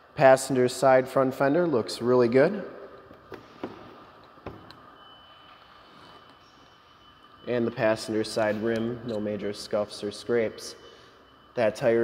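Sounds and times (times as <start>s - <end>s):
faint high steady whine: 0.0s - 12.0s.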